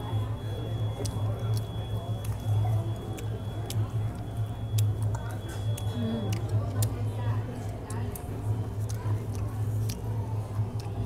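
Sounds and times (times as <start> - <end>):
faint voices: 0.0 - 11.0
steady low hum: 0.0 - 11.0.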